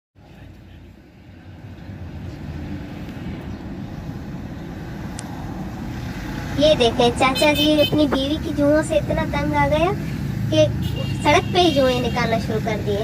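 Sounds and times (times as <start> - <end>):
car engine and traffic rumble: 0.2 - 13.0.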